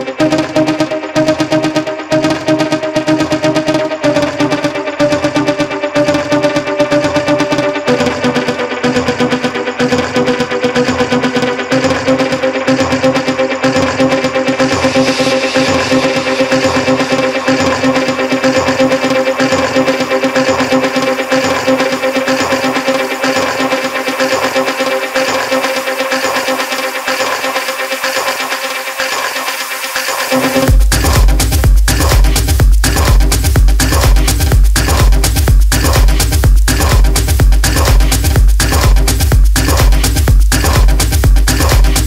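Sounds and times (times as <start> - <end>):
steady techno beat: 0.0 - 42.0
synthesizer chords: 0.0 - 42.0.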